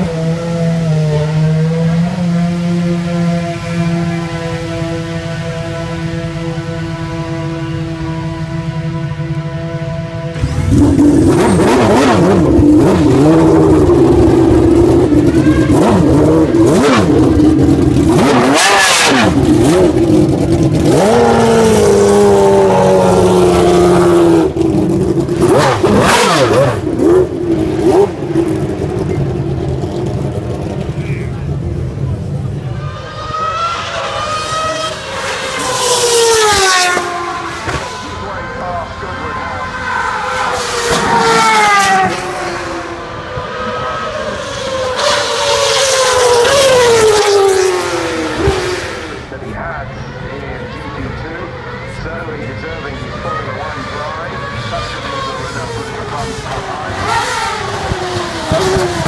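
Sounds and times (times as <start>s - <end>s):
racing car accelerating through gears: 0.0s - 31.0s, 32.2s - 59.0s
racing car engine running at low speed: 0.0s - 59.0s.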